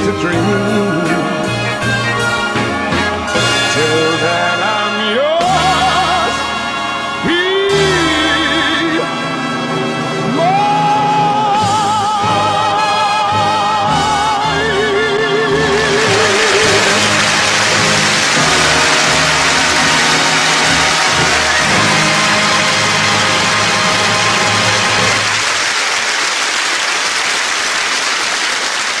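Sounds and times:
audience applauding: 0:15.5 - 0:29.0
orchestra sustained chord: 0:15.9 - 0:25.4.

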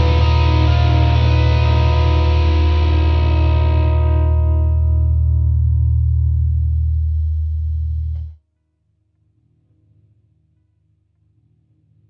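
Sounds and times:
deep low notes: 0:00.0 - 0:08.3
distorted electric guitar chord: 0:00.0 - 0:08.3.

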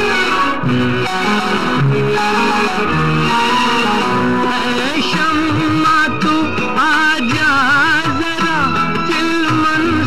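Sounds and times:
plucked strings melody: 0:00.0 - 0:10.0
steady musical accompaniment: 0:00.0 - 0:10.0.

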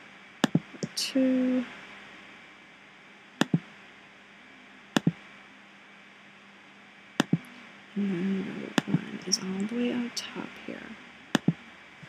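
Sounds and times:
faint steady hiss: 0:00.0 - 0:12.0
computer mouse clicks: 0:00.4 - 0:01.0, 0:05.0 - 0:05.2, 0:07.2 - 0:07.5, 0:11.4 - 0:11.6.

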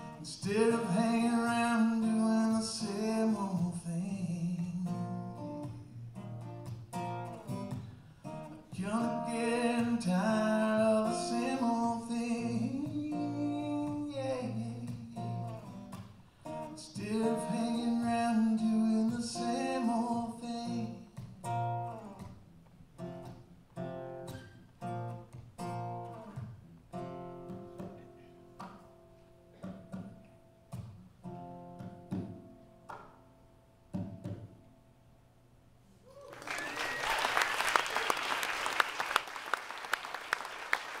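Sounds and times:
acoustic guitar strumming chords: 0:00.0 - 0:22.4
audience applause: 0:36.1 - 0:41.0.

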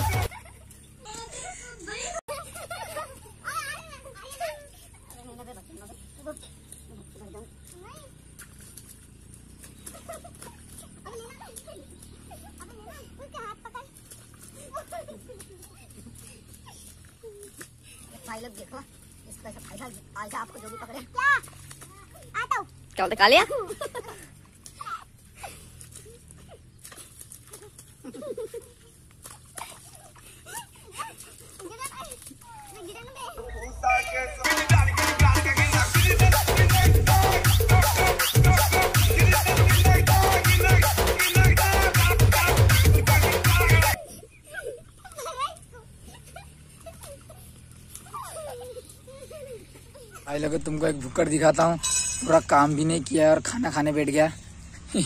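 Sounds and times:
boys shouting: 0:33.3 - 0:44.0.

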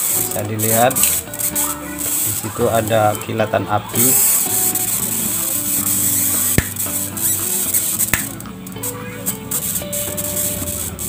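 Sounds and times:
background music: 0:00.0 - 0:11.0
high-voltage arcing crackle: 0:00.0 - 0:11.0
sharp electric snaps: 0:00.0 - 0:11.0.

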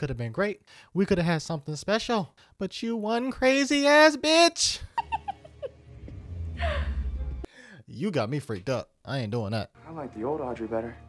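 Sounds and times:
person gasping: 0:06.6 - 0:07.9.

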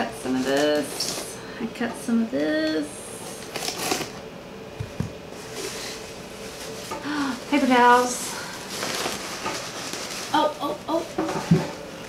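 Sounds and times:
cardboard rustle: 0:07.5 - 0:11.7.

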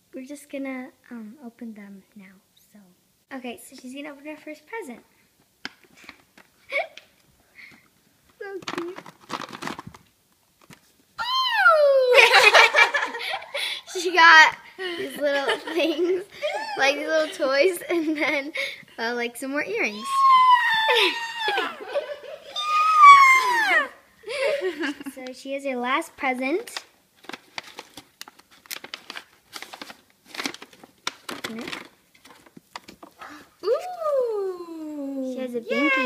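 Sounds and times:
girl laughing: 0:06.7 - 0:07.0, 0:11.2 - 0:14.1, 0:14.8 - 0:18.7, 0:20.0 - 0:25.2, 0:35.7 - 0:36.0
paper bag rustling: 0:08.6 - 0:10.0, 0:27.2 - 0:33.2
girl squealing: 0:11.2 - 0:12.3, 0:16.4 - 0:17.1, 0:19.9 - 0:24.0, 0:33.2 - 0:36.0
person exclaiming: 0:11.2 - 0:12.3, 0:16.4 - 0:17.1, 0:19.9 - 0:21.9, 0:22.5 - 0:24.0, 0:33.6 - 0:36.0.

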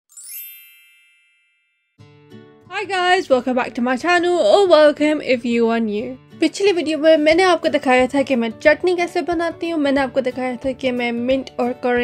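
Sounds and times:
sparkle chime: 0:00.1 - 0:02.1.

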